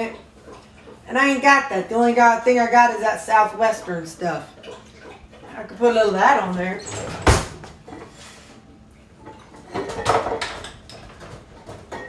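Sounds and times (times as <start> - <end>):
rustling and clattering of objects: 6.8 - 12.0.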